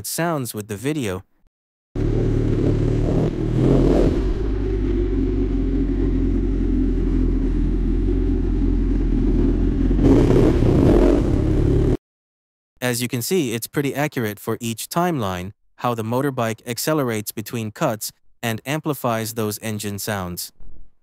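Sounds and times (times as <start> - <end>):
car traffic: 2.0 - 12.0
motorcycle engine revving: 2.0 - 12.0.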